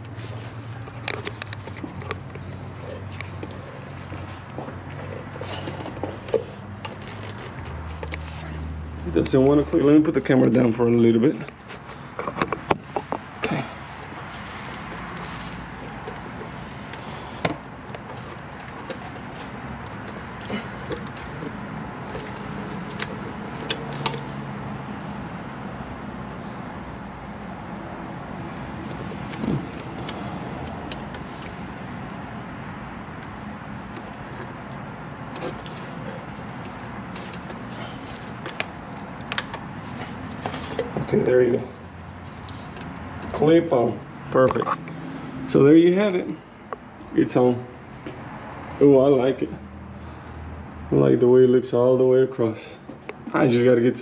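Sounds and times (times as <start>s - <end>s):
steady background noise: 0.0s - 54.0s.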